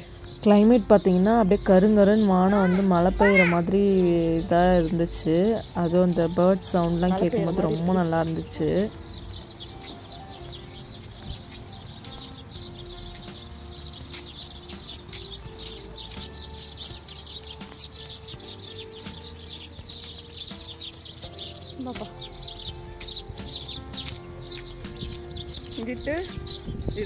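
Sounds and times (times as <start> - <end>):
small birds chirping: 0.0 - 27.0
soft music of held notes: 0.0 - 27.0.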